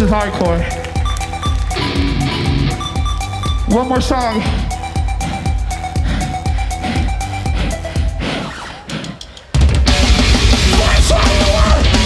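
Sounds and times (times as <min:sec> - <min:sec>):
hardcore band playing loud: 0:00.0 - 0:07.0, 0:09.6 - 0:12.0
sharp clicks: 0:00.8 - 0:03.4.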